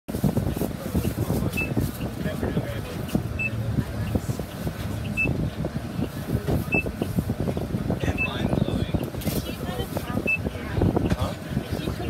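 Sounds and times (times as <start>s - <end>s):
bus engine idling: 0.1s - 12.0s.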